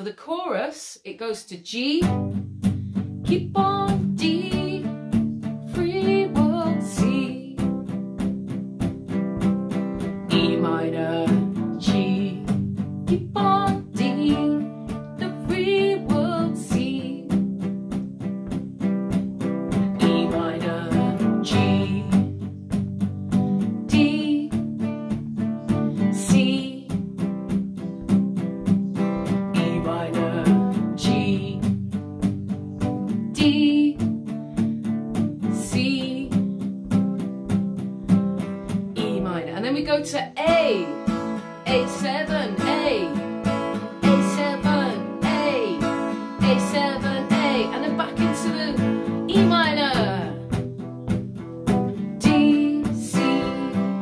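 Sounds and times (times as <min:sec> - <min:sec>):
acoustic guitar strumming: 0:02.0 - 0:54.0.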